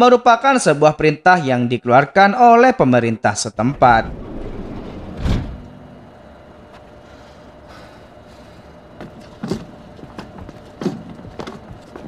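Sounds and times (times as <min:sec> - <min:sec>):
train humming at platform: 0:03.7 - 0:12.0
footsteps: 0:09.0 - 0:12.0.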